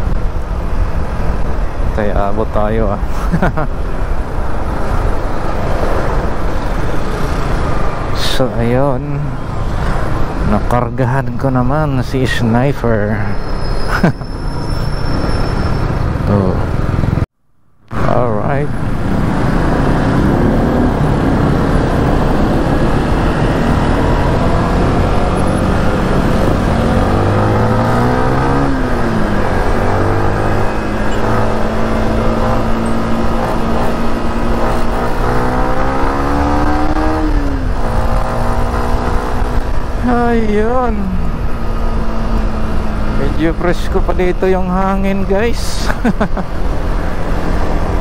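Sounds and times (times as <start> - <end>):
wind and road noise: 0.0 - 48.0.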